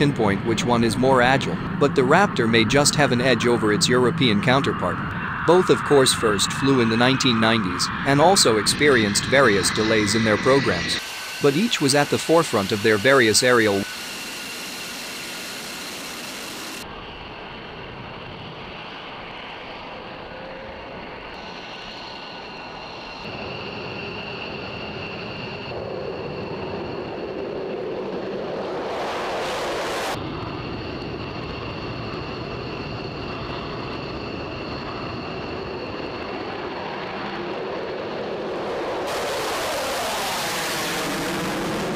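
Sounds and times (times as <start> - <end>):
jet engine rush and whine: 0.0 - 41.9
jet passing: 0.0 - 41.9.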